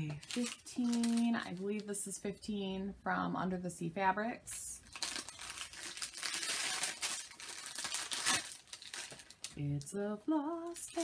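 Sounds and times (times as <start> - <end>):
gift wrap crinkling and tearing: 0.0 - 1.8, 4.8 - 9.6.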